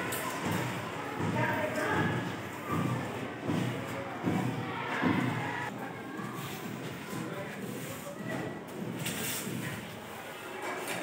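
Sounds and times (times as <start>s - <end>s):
indistinct voices talking: 0.0s - 7.8s.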